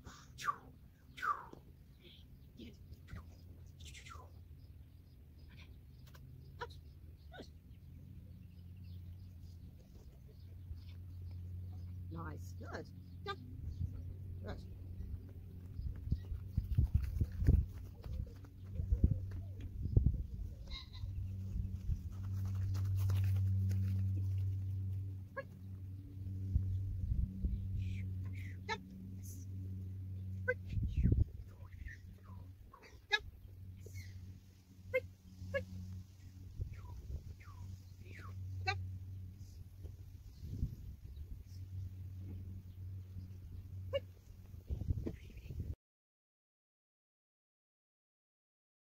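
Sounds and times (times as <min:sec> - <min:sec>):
steady low hum: 0:00.0 - 0:45.8.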